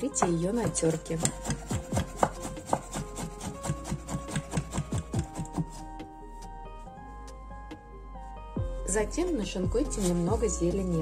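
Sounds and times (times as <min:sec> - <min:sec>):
knife slicing on wooden cutting board: 0:00.2 - 0:06.0.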